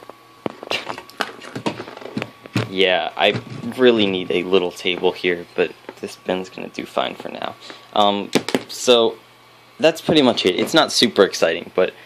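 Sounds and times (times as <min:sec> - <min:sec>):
hands knocking on metal frame: 0:01.5 - 0:03.7.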